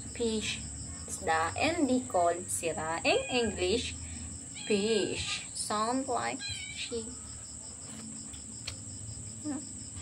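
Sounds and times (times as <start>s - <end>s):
crickets chirping: 0.0s - 10.0s
sharp click: 8.0s - 8.8s.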